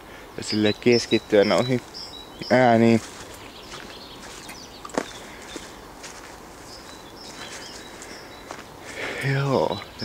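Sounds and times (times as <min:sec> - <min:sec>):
faint high bird calls: 0:00.4 - 0:10.0
footsteps: 0:01.7 - 0:09.3.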